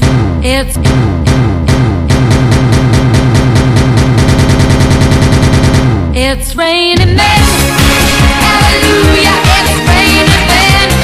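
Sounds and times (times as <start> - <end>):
fast drum roll: 0.0 - 6.2
repeated low synth note: 0.0 - 6.4.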